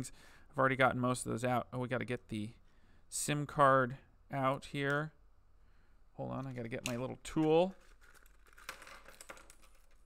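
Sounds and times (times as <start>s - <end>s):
small parts clicking and tapping: 6.8s - 10.0s.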